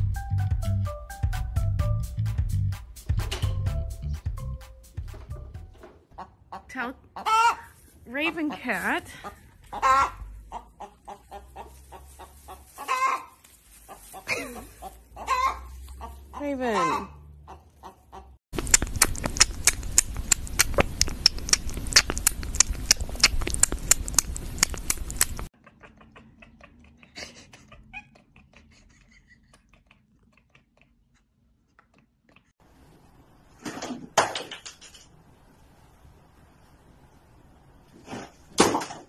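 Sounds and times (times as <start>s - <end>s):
hen squawking and clucking: 6.1s - 18.4s, 21.2s - 31.0s.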